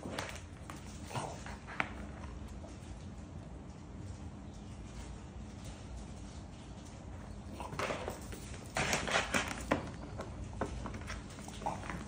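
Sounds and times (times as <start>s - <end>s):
dog claws clicking on concrete: 0.0s - 4.2s, 5.0s - 12.0s.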